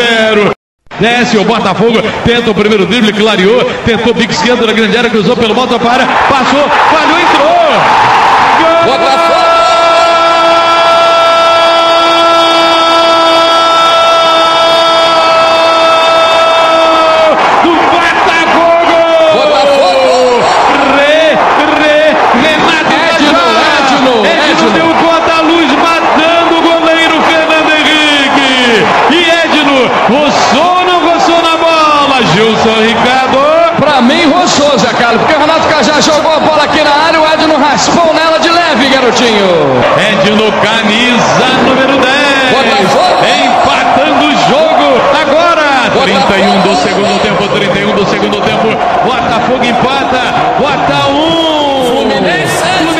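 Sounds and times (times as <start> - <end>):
men commentating excitedly on radio: 0.0 - 52.9
man shouting goal cry: 6.0 - 32.1.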